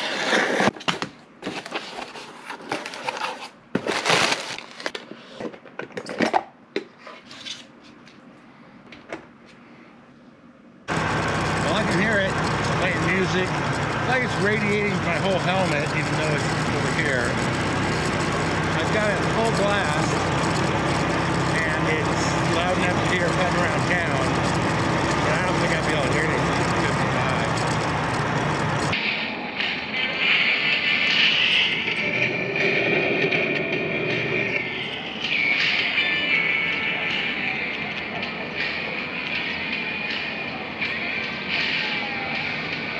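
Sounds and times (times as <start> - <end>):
motorcycle engine: 10.9 - 29.0.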